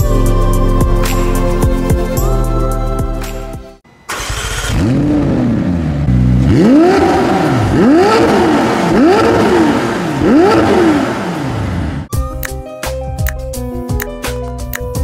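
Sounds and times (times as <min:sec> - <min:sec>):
car engine revving: 0:04.1 - 0:12.1.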